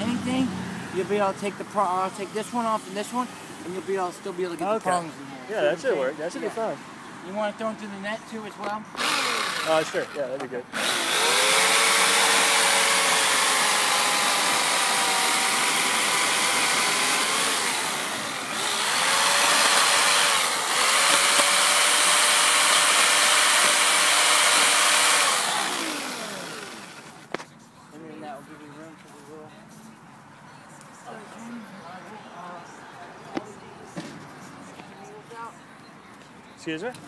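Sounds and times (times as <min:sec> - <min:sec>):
electric chainsaw cutting wood: 0:09.0 - 0:27.3.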